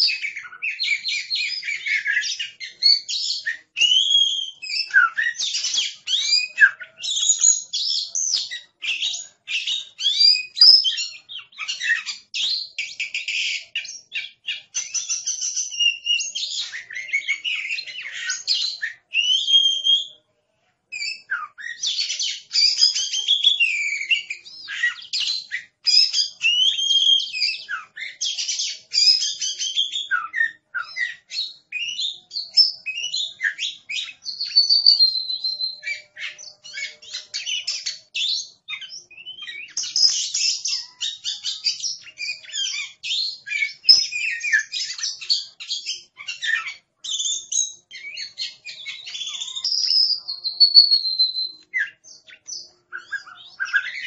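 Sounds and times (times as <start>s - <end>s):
songbird singing varied song: 0.0s - 20.2s, 20.9s - 54.0s.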